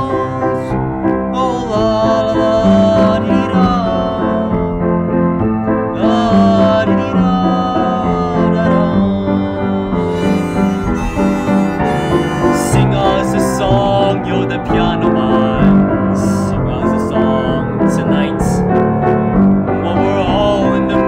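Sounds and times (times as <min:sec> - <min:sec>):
grand piano chords: 0:00.0 - 0:21.0
harmonica: 0:06.5 - 0:16.8.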